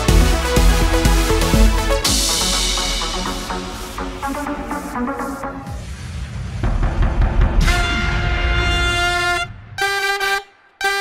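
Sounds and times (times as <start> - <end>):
horn honks: 7.6 - 11.0.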